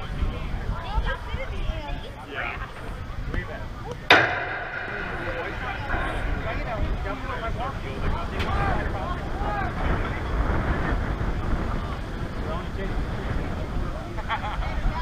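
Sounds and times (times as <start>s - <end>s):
faint voices: 0.0s - 15.0s.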